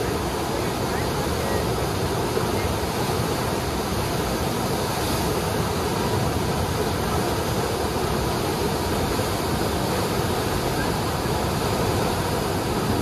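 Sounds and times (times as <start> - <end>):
rushing river white water: 0.0 - 13.0.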